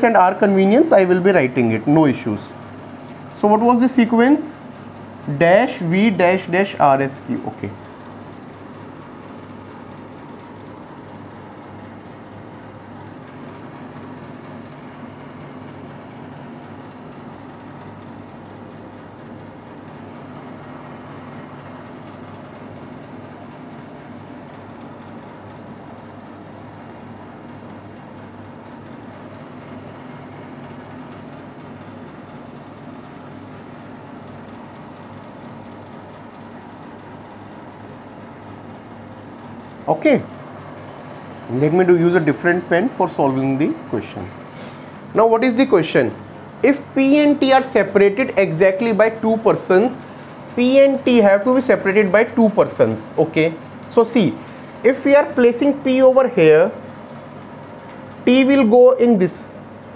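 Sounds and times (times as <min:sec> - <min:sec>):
room hum and hiss: 0:00.0 - 0:59.9.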